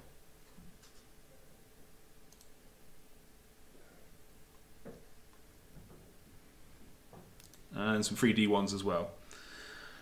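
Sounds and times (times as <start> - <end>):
computer mouse click: 2.3 - 2.6, 7.4 - 7.6.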